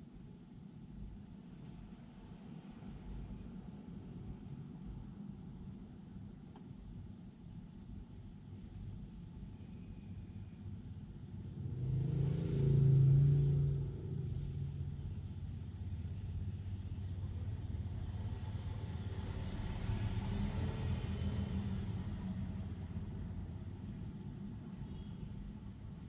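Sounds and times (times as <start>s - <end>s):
low engine hum: 10.0s - 26.0s
road traffic passing: 11.5s - 25.8s.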